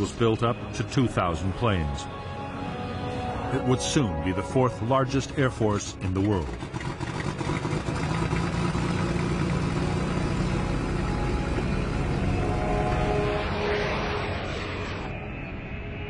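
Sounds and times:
aircraft engine rumble: 5.5 - 15.2.

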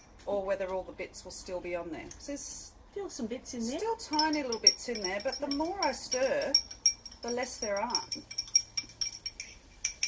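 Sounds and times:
teaspoon clinking against glass: 4.0 - 10.0.

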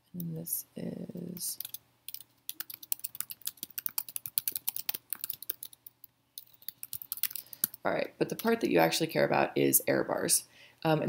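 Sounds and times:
typing on computer keyboard: 1.6 - 7.8.

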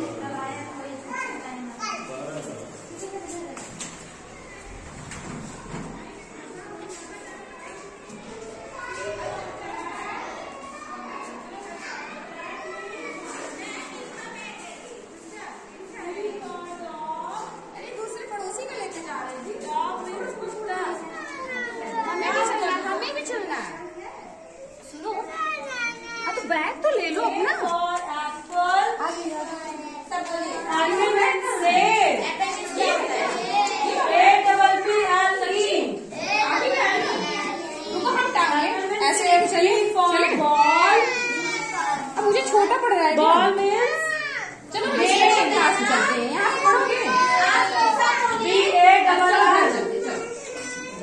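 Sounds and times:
children chattering: 0.0 - 51.0.

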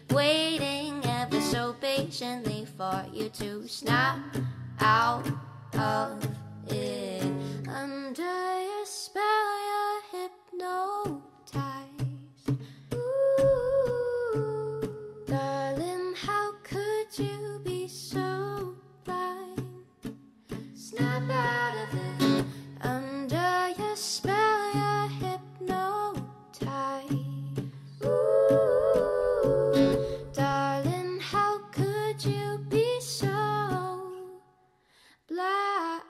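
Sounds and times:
strummed acoustic guitar: 0.0 - 7.9, 11.5 - 34.1
woman singing: 0.0 - 19.9, 20.6 - 34.6, 35.3 - 36.0.

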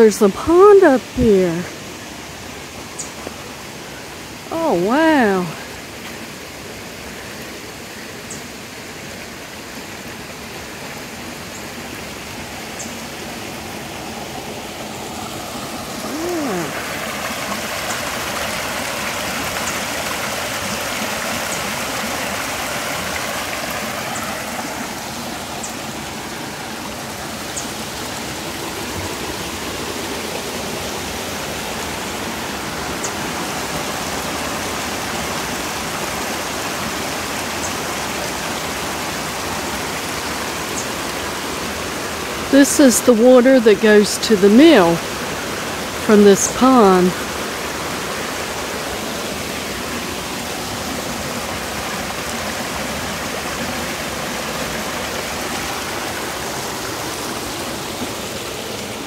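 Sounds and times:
running water rushing: 0.0 - 59.0.

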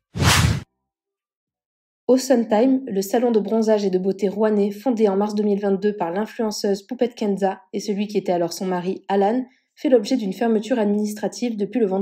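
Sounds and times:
whoosh transition: 0.0 - 0.6.

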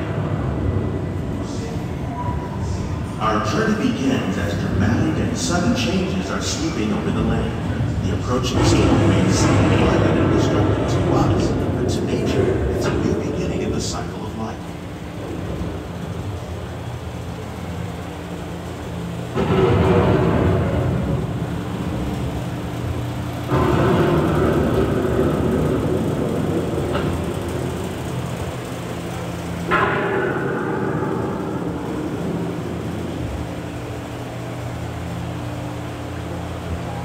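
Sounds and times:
steady low hum: 0.0 - 37.0
thunder claps rumbling: 4.1 - 13.8, 14.5 - 35.7.

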